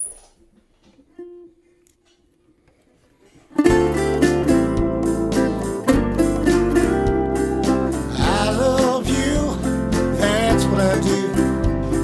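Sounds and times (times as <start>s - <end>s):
strummed guitars and bass: 3.6s - 12.0s.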